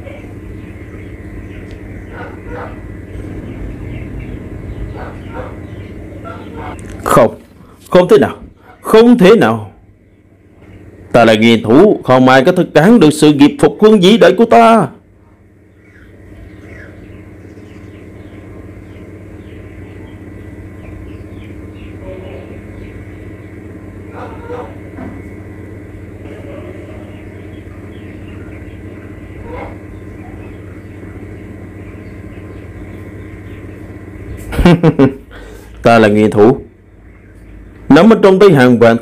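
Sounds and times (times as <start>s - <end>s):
low rumbling: 0.0s - 8.8s.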